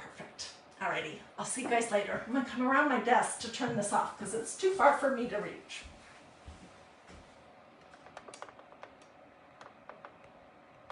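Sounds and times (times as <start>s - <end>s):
phone handling clicks and taps: 7.9s - 10.3s.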